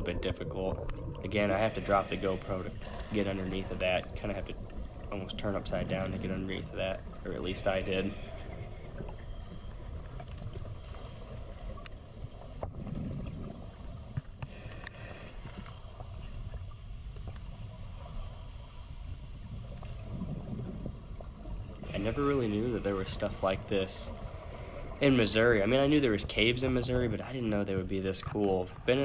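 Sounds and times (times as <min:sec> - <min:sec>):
underwater current rumble: 0:00.0 - 0:29.0
faint clicks: 0:08.2 - 0:18.2.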